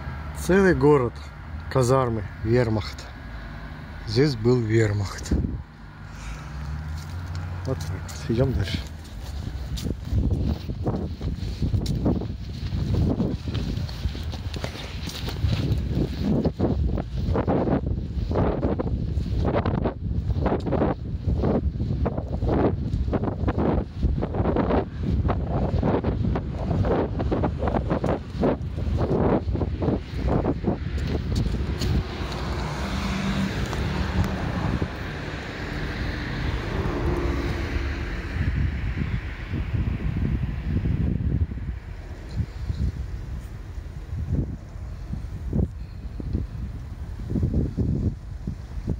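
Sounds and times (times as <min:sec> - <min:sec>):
steady broad rumble: 0:00.0 - 0:48.9
wind rumbling on microphone: 0:00.0 - 0:48.9
footsteps on paved stone: 0:06.2 - 0:19.6, 0:20.2 - 0:24.6, 0:25.2 - 0:35.1.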